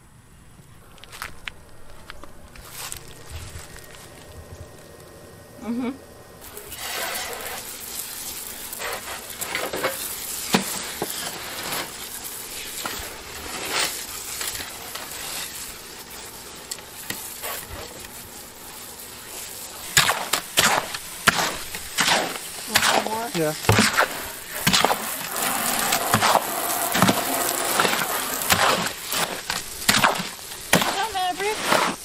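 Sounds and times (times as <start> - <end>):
water hissing from a hose: 2.5 - 32.0
hoe scraping wet concrete mix: 6.4 - 32.0.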